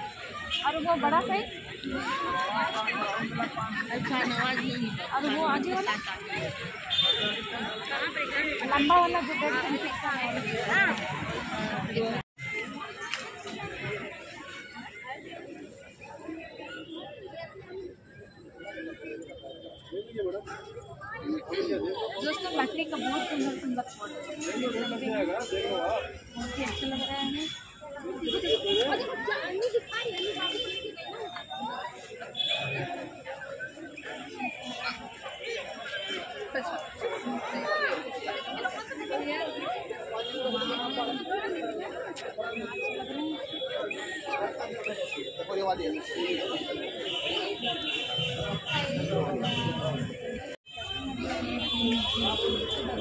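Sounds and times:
crowd chatter: 0.0s - 53.0s
people talking: 0.0s - 53.0s.

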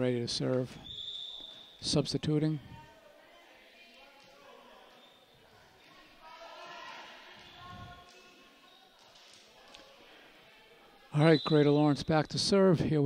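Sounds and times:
faint echoing voices: 0.0s - 13.0s.

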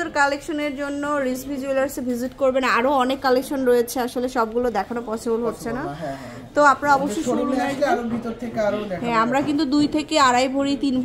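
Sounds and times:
woman talking: 0.0s - 5.9s, 6.6s - 7.5s, 9.0s - 11.0s.

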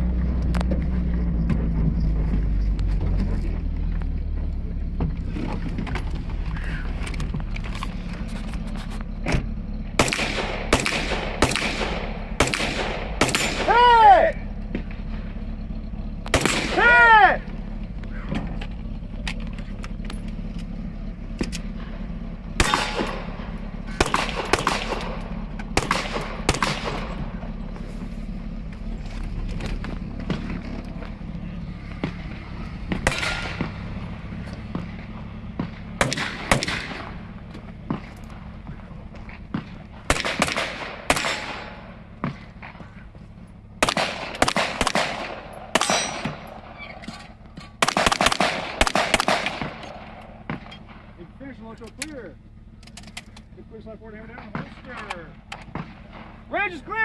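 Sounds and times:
rifle gunshots: 10.0s - 13.9s, 16.3s - 17.0s, 22.6s - 27.4s, 33.0s - 34.0s, 35.6s - 37.3s, 39.5s - 42.4s, 43.8s - 46.8s, 47.8s - 51.1s.

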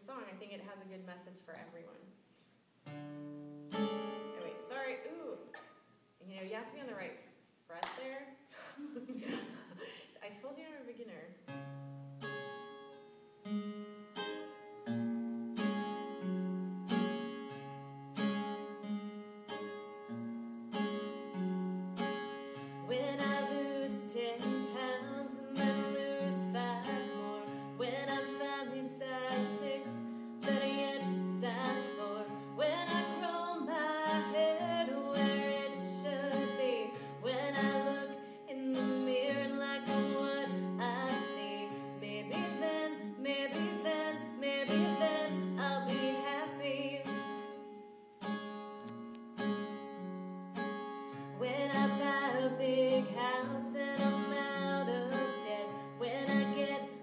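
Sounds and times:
acoustic guitar: 0.0s - 7.1s, 7.8s - 57.0s
woman singing: 22.9s - 47.3s, 51.4s - 57.0s.

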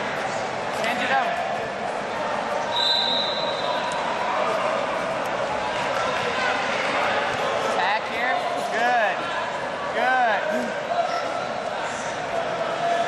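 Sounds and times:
sports hall din with voices: 0.0s - 13.0s.

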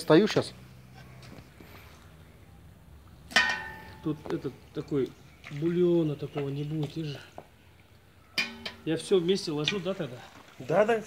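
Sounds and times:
metal ladle clinking on pot: 3.3s - 4.3s, 8.3s - 9.9s.

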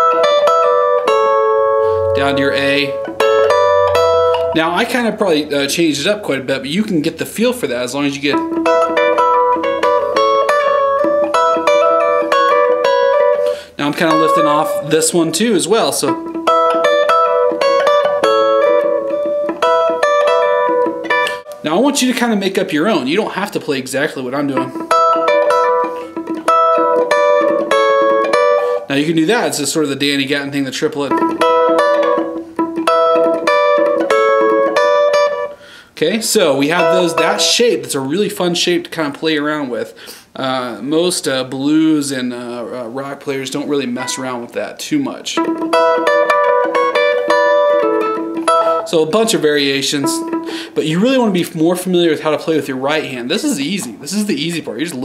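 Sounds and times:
electric guitar plucked chords: 0.0s - 35.8s, 36.4s - 38.0s, 43.8s - 44.6s, 45.3s - 55.0s.

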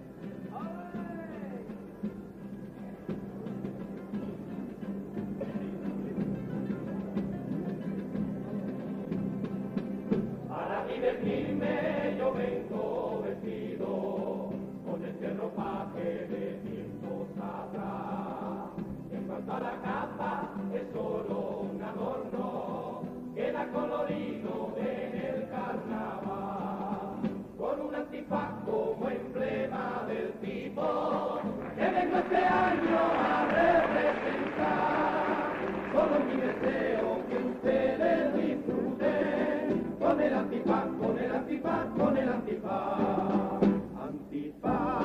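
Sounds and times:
male chorus singing: 10.5s - 45.0s.

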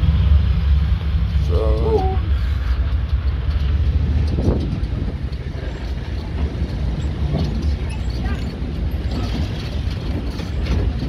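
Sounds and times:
vehicle rumbling in motion: 0.0s - 11.0s
wind noise on microphone: 2.3s - 11.0s.

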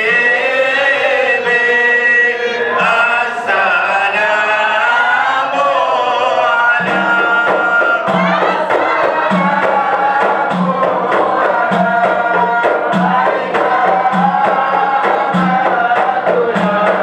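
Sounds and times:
men chanting: 0.0s - 17.0s
frame drum beat: 6.8s - 17.0s.

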